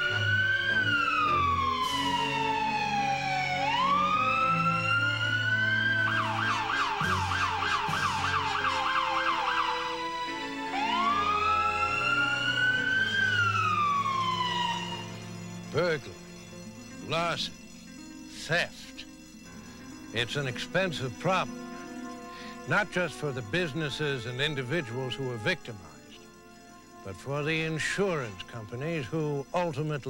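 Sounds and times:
police siren wailing and yelping: 0:00.0 - 0:17.4.

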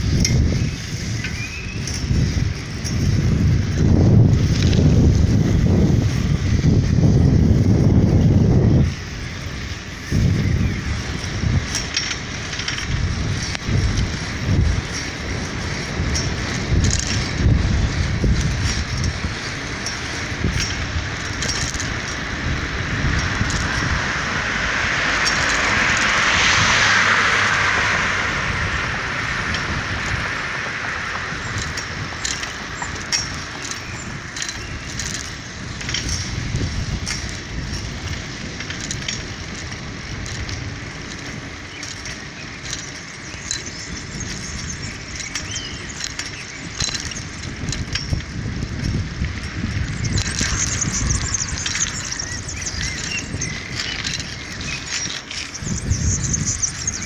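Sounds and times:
wind buffeting microphone: 0:00.0 - 0:57.0
car passing with tyre hiss: 0:22.2 - 0:34.3.

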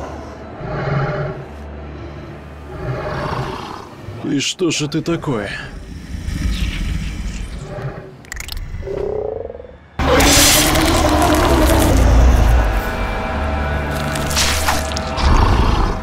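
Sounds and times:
film score music: 0:00.0 - 0:16.0
deep rumble: 0:05.1 - 0:16.0
low creature croaking: 0:05.6 - 0:12.8, 0:14.3 - 0:16.0
loud creature cry: 0:10.0 - 0:12.7.

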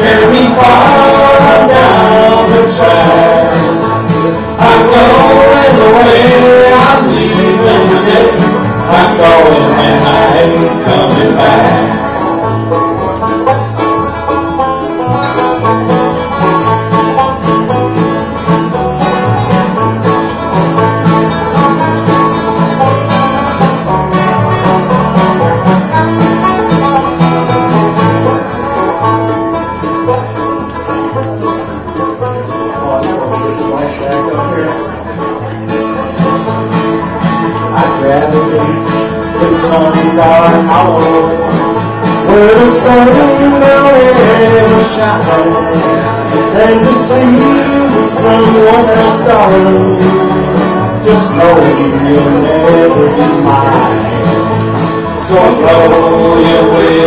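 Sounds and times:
picked lead string melody: 0:00.0 - 0:57.0
strummed acoustic guitar: 0:00.0 - 0:57.0
upright bass plucking: 0:00.0 - 0:57.0.

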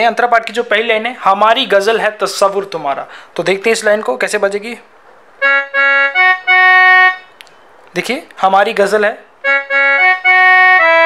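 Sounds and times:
keyboard organ tone held notes: 0:05.4 - 0:07.7, 0:09.2 - 0:11.0.

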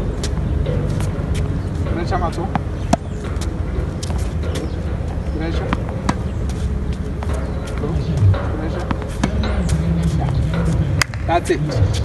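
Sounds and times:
tennis ball bouncing on court: 0:00.2 - 0:11.3.

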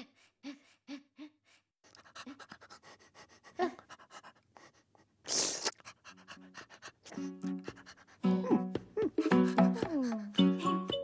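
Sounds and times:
dog panting: 0:01.8 - 0:10.6.

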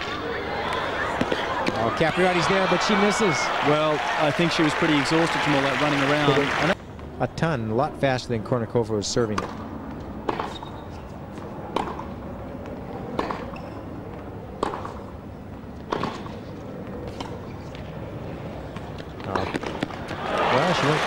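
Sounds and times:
low hum of crowd: 0:00.0 - 0:08.5, 0:09.5 - 0:21.0
crowd applauding: 0:01.4 - 0:06.8, 0:20.1 - 0:21.0
tennis rackets hitting ball: 0:09.3 - 0:09.6, 0:10.2 - 0:12.2, 0:13.0 - 0:13.8, 0:14.6 - 0:15.0, 0:15.8 - 0:17.8.

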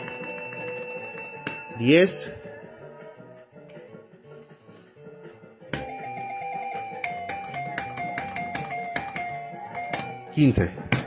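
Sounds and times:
beeping slot machine melody: 0:00.0 - 0:02.3, 0:05.8 - 0:10.7.

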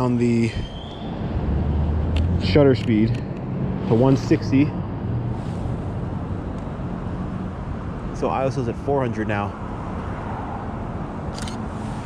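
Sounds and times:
low traffic rumble: 0:00.0 - 0:12.0.

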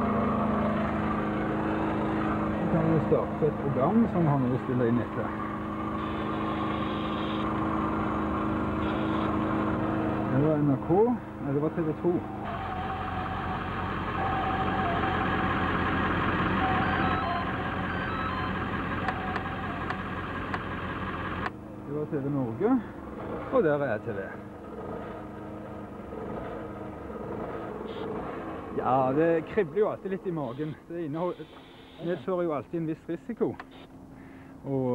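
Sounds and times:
engine idling hum: 0:00.0 - 0:34.9.

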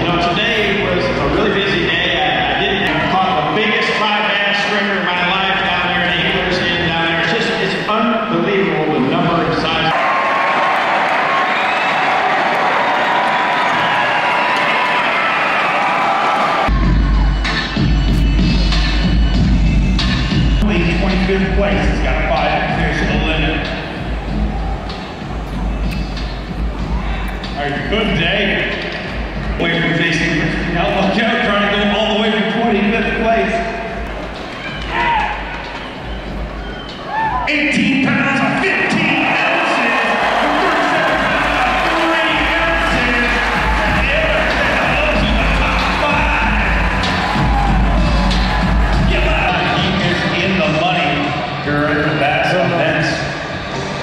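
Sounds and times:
loud music over public address: 0:00.0 - 0:14.1, 0:14.9 - 0:54.0
crowd cheering: 0:00.0 - 0:54.0
heavy bass: 0:16.7 - 0:31.1, 0:40.2 - 0:50.4
announcer over public address: 0:37.5 - 0:47.1.

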